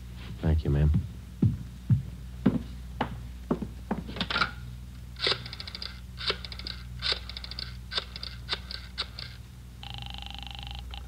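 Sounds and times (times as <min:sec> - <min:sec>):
rotary dial clicking: 0:05.2 - 0:09.4
buzzing ring tone: 0:05.2 - 0:11.0.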